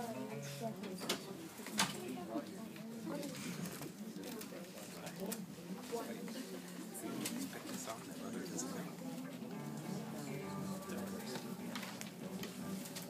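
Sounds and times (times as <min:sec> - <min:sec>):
low voices murmuring: 0:00.0 - 0:13.0.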